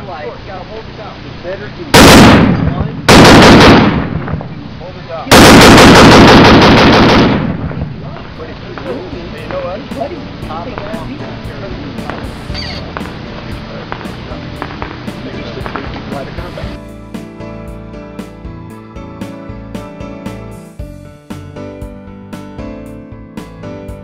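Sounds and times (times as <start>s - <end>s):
machine gun firing bursts: 2.0s - 4.2s, 5.3s - 7.7s.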